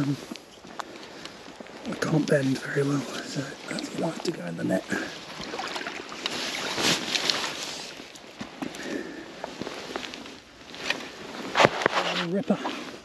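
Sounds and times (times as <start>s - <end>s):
water splashing: 1.1s - 8.4s
landing net rustling: 1.6s - 13.0s.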